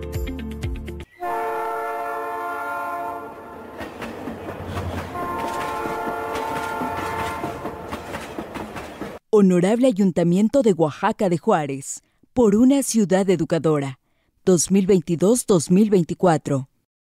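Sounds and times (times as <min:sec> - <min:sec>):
train horn blasts: 0:01.1 - 0:03.9, 0:05.1 - 0:08.2
train clattering along rails: 0:03.3 - 0:09.2.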